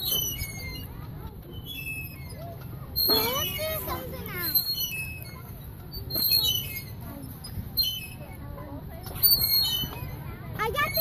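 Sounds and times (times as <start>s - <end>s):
swing chain squeaking: 0.0s - 11.0s.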